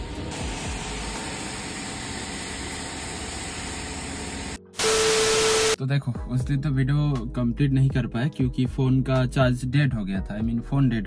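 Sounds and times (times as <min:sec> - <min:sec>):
static burst: 0:04.8 - 0:05.8
steady beep: 0:04.8 - 0:05.8
faint background music: 0:05.8 - 0:11.0.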